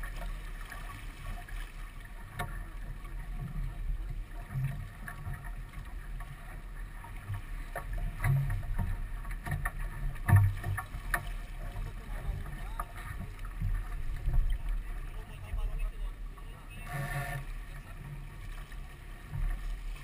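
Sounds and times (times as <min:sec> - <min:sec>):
water rushing along hull: 0:00.0 - 0:20.0.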